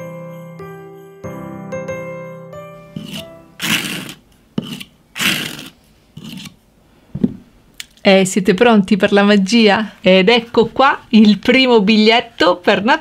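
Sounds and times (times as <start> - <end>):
bright jingly music: 0.0 - 3.6
palette knife scraping paste: 3.0 - 6.6.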